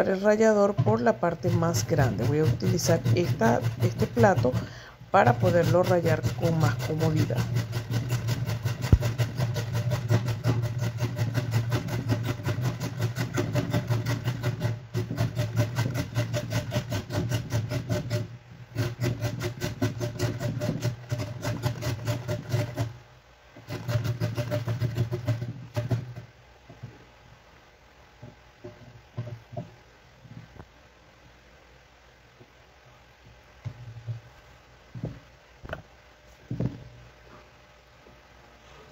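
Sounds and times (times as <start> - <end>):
carrot grated on metal grater: 0.9 - 23.0, 23.6 - 26.2.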